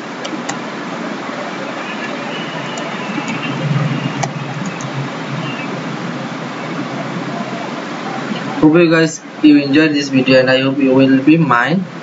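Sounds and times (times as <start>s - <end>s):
low rumble: 1.3s - 8.8s.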